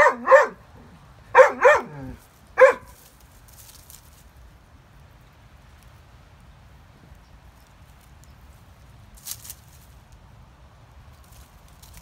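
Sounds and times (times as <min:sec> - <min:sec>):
dog barking in short yips: 0:00.0 - 0:00.6, 0:02.6 - 0:02.9.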